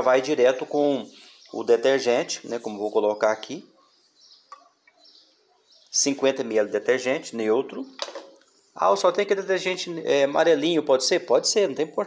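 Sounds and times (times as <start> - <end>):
faint high chirping: 0.2 - 6.4.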